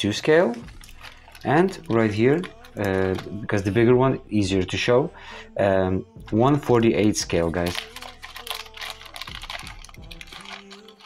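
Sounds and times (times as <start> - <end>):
plastic bag crinkling: 0.0 - 4.0, 6.4 - 11.0.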